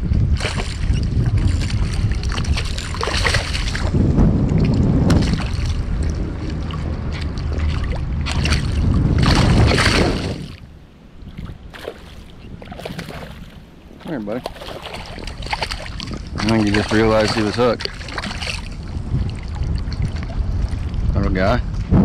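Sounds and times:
wind buffeting microphone: 0.0s - 22.0s
fish splashing in water: 0.3s - 10.6s, 11.3s - 13.7s, 14.4s - 21.0s.

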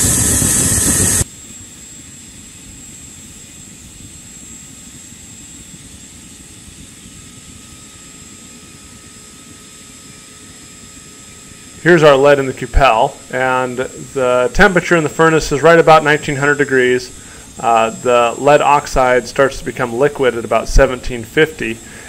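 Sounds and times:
faint high whine: 0.0s - 22.0s
furnace burner roaring: 0.0s - 22.0s.

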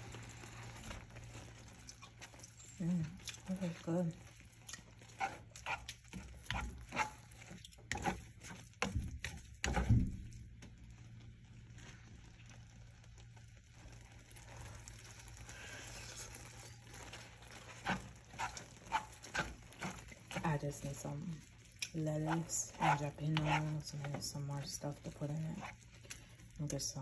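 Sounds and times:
spoon stirring lentils in a pan: 3.1s - 11.9s, 16.2s - 27.0s.

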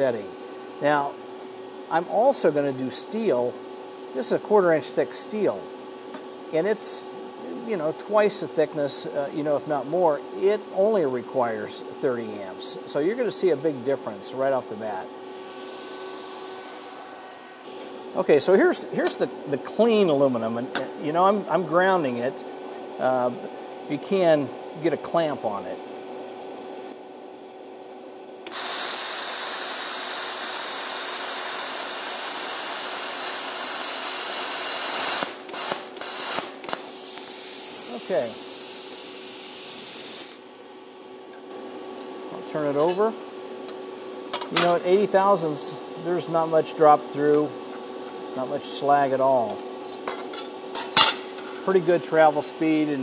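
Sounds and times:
fan hiss: 0.0s - 5.7s, 28.4s - 40.6s, 41.2s - 49.9s, 50.8s - 53.0s
faint machine hum: 0.0s - 53.0s
compressed air hissing from torch: 28.5s - 40.4s.

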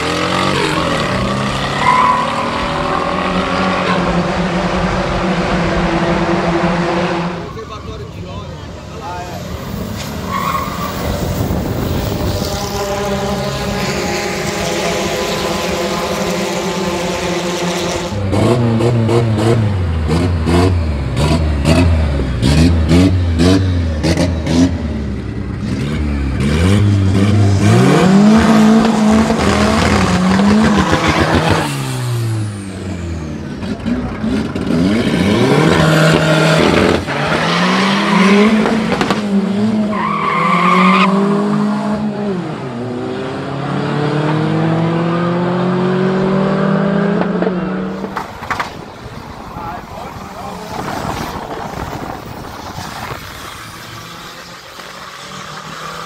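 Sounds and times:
race car engines revving: 0.0s - 56.0s.

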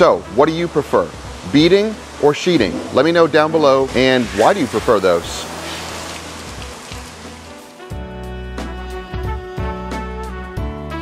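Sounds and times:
background music with low notes: 0.0s - 11.0s
hose water splashing on car: 0.6s - 7.9s.

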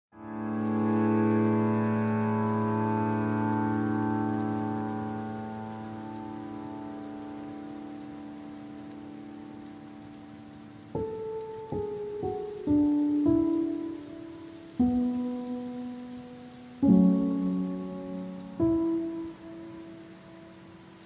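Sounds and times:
ambient music chord: 0.2s - 10.6s, 11.2s - 21.0s
faint scattered crackles: 0.2s - 21.0s.

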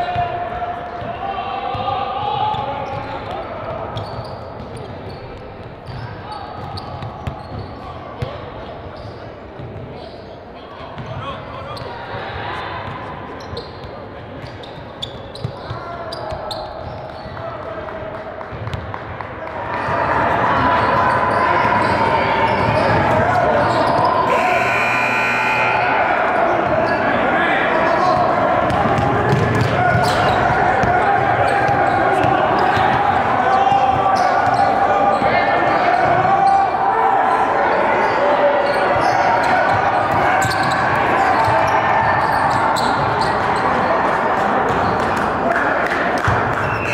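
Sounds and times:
players' voices echoing: 0.0s - 46.9s
basketballs bouncing on hardwood floor: 28.7s - 31.0s.

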